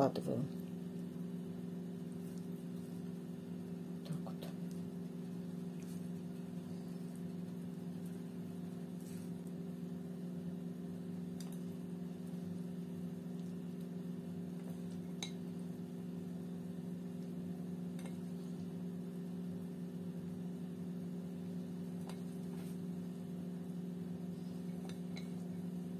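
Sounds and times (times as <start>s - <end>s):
low electrical hum: 0.0s - 25.9s.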